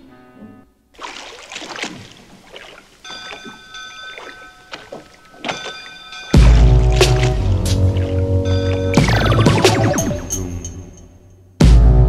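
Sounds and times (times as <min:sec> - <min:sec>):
water swishing against hull: 0:01.0 - 0:09.5.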